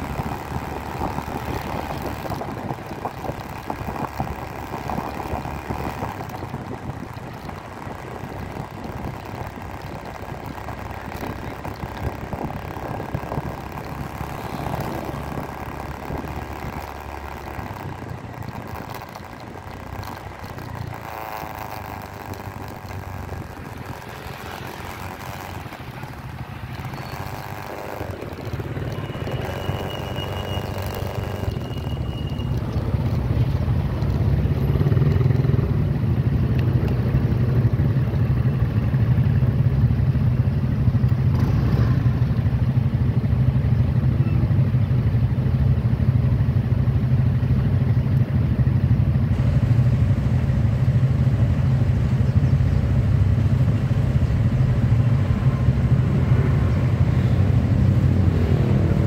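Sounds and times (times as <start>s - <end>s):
motorcycle engines idling: 0.0s - 59.0s.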